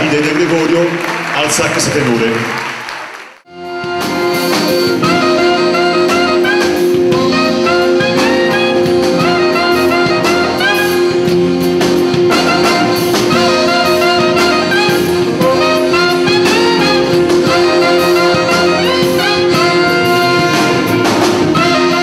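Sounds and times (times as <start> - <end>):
live jazz band playing: 3.4 - 22.0.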